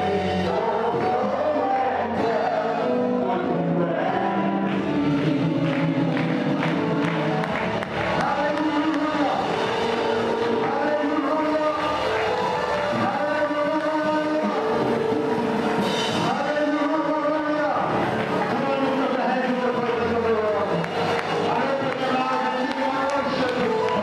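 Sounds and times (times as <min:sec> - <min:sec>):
congregation singing over music: 0:00.0 - 0:24.0.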